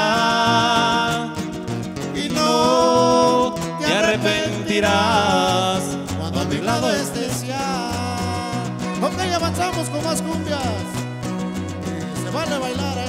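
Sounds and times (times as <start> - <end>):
bass line: 0.0 - 13.0
strummed guitars: 0.0 - 13.0
violin melody with vibrato: 8.6 - 13.0.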